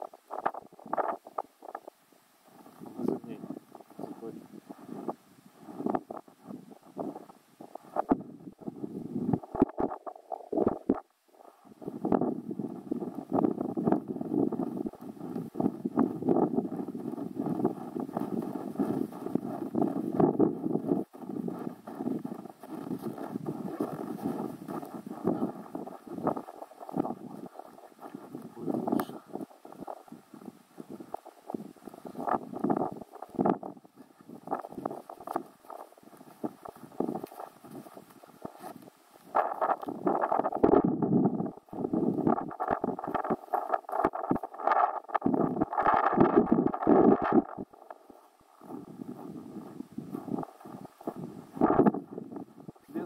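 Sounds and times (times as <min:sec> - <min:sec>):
footsteps crunching in snow: 0:12.0 - 0:40.7, 0:41.5 - 0:52.9.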